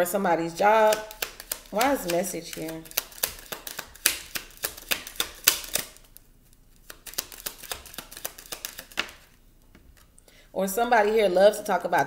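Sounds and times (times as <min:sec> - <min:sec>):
cards being shuffled: 0:00.7 - 0:10.1.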